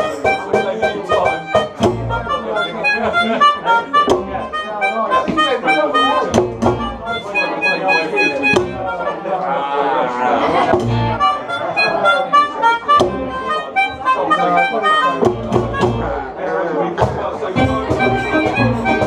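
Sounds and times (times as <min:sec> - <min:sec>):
upright double bass: 0:00.0 - 0:05.4, 0:06.2 - 0:09.1, 0:10.4 - 0:16.4, 0:17.0 - 0:19.0
melodica lead: 0:00.0 - 0:09.6, 0:10.4 - 0:16.3, 0:17.6 - 0:19.0
violin: 0:00.0 - 0:16.3, 0:17.5 - 0:19.0
acoustic guitar: 0:17.3 - 0:19.0.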